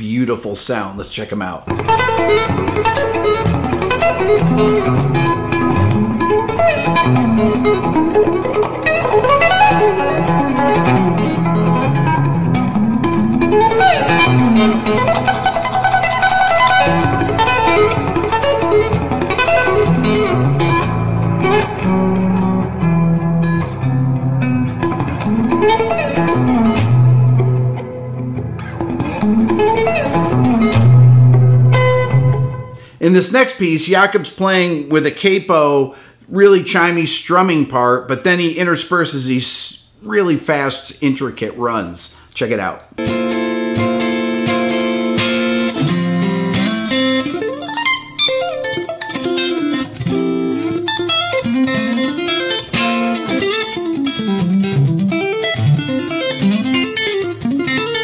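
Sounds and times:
electric guitar melody: 0:01.7 - 0:33.0, 0:42.9 - 0:58.0.

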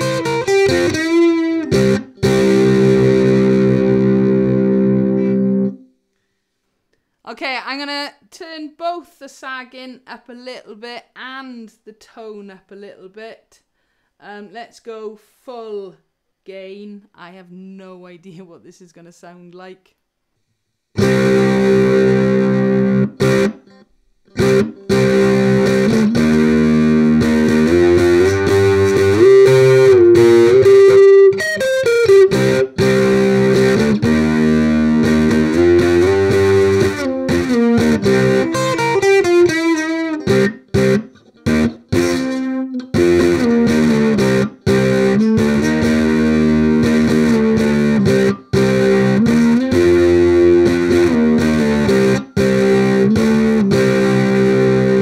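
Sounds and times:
distorted electric ukulele: 0:00.0 - 0:05.9, 0:21.0 - 0:55.0.

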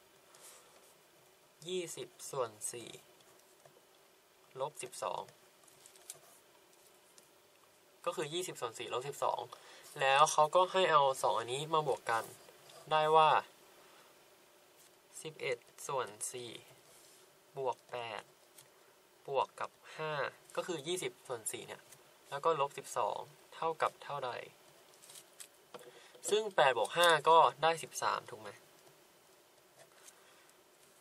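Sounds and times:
person speaking: 0:01.6 - 0:03.2, 0:04.5 - 0:05.4, 0:08.0 - 0:13.6, 0:15.1 - 0:16.8, 0:17.5 - 0:18.4, 0:19.2 - 0:24.6, 0:25.8 - 0:28.7.

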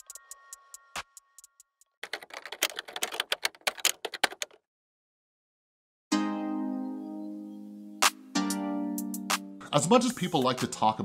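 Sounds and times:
typewriter key clacks: 0:02.0 - 0:04.6.

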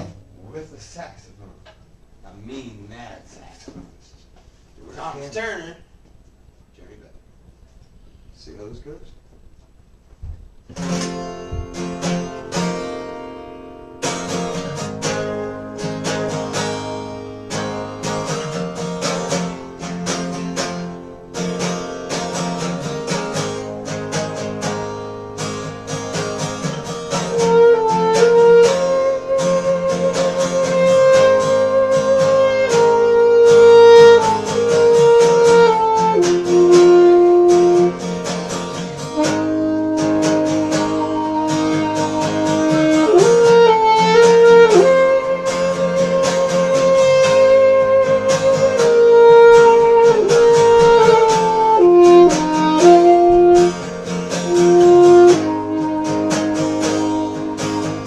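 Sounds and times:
acoustic guitar strumming chords: 0:00.0 - 0:02.0, 0:10.7 - 0:58.0
saxophone playing long notes: 0:26.8 - 0:38.3, 0:38.9 - 0:58.0.

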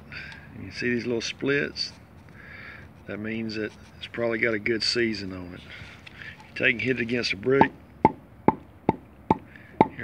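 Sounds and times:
firewood knocking against brick: 0:07.6 - 0:10.0.

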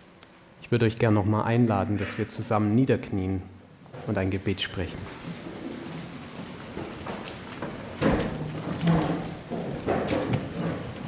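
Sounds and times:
audience shuffling and rustling: 0:03.8 - 0:11.0.

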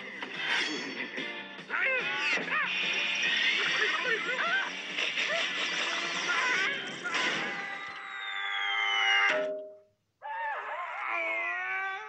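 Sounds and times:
cartoon music with falling glide: 0:00.0 - 0:09.8
cartoon dog wavering cry: 0:06.3 - 0:09.5
cartoon hit: 0:09.2 - 0:09.8.

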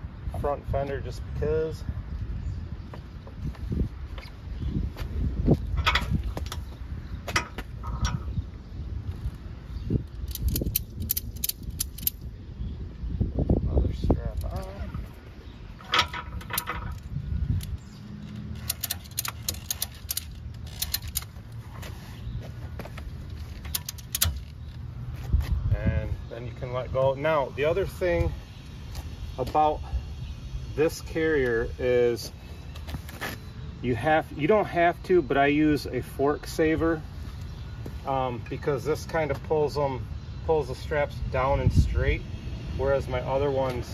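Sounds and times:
wind on microphone: 0:00.0 - 0:18.1, 0:25.1 - 0:26.3
ratchet straps clicking and rattling: 0:10.0 - 0:12.3, 0:15.8 - 0:25.3.

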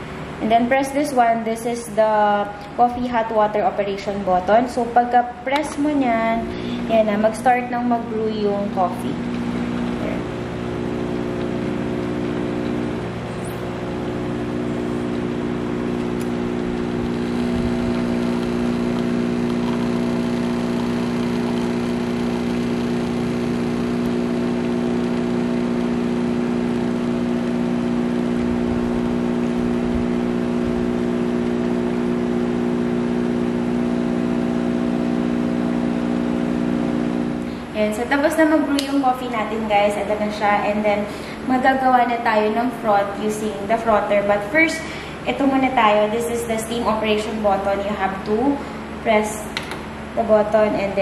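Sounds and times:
espresso machine pump humming: 0:05.8 - 0:38.6.

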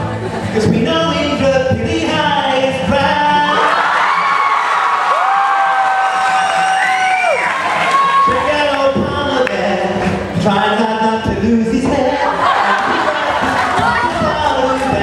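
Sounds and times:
acoustic guitar: 0:00.0 - 0:15.0
man singing: 0:00.4 - 0:03.8, 0:08.0 - 0:15.0
voices holding long notes: 0:10.9 - 0:15.0.

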